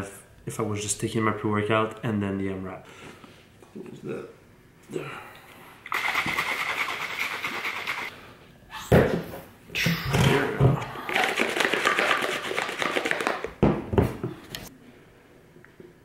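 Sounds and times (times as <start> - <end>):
shaker bottle rattling: 5.9 - 8.1, 11.1 - 13.5.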